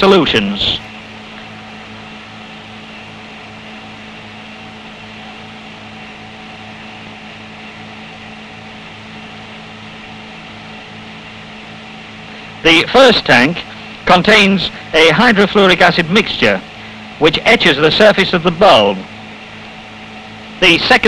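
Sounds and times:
film soundtrack hiss: 0:00.0 - 0:21.0
pulsing low hum: 0:00.0 - 0:21.0.

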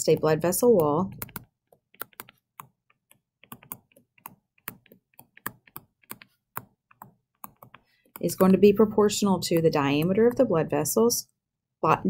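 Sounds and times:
stylus tapping on touchscreen: 0:00.0 - 0:10.7.

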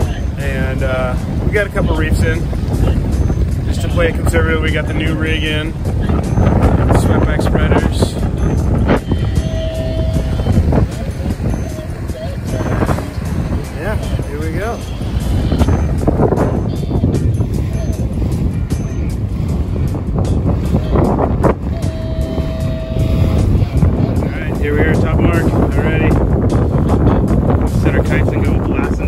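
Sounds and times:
choppy water rushing along hull: 0:00.0 - 0:29.0
wind noise on microphone: 0:00.0 - 0:29.0.

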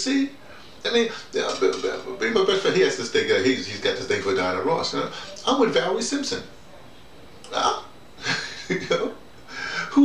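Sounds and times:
man making wordless vocal sounds: 0:07.4 - 0:07.9.

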